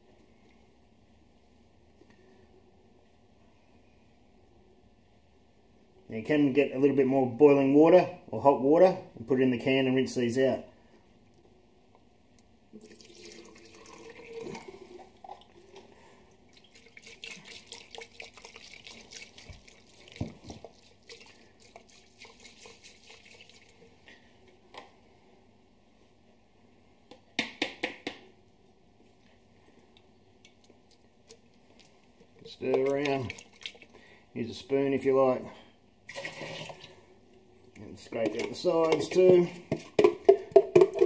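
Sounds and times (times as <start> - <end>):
water trickling and dripping: 12.8 - 15.8, 16.5 - 23.8, 32.5 - 34.0.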